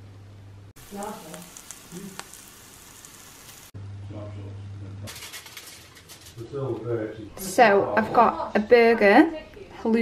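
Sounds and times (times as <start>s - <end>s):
cheese sizzling in oil: 0.8s - 3.8s.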